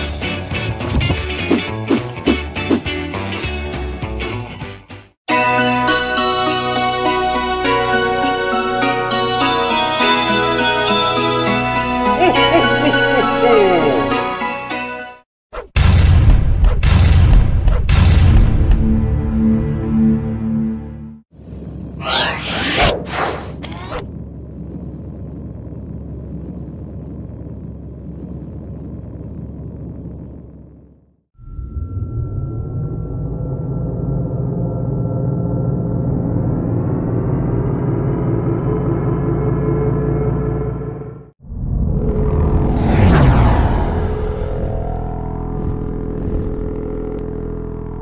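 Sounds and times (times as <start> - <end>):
low rumble sound effect: 21.4 - 48.0
low drone: 31.4 - 48.0.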